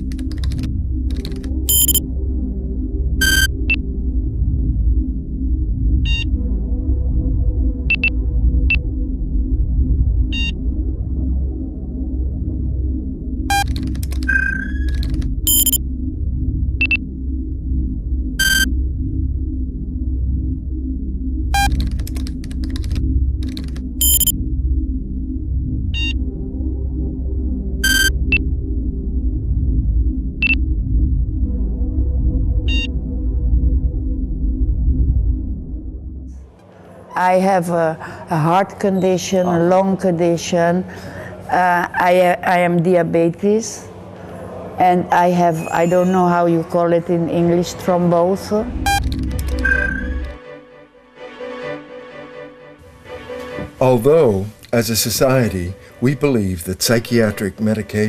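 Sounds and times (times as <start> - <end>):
synthesizer drone with pulse: 0.0 - 37.2
high electronic bleeps: 1.7 - 2.0, 3.2 - 3.5, 15.5 - 15.8, 18.4 - 18.7, 24.0 - 24.3, 27.8 - 28.2, 32.7 - 32.9.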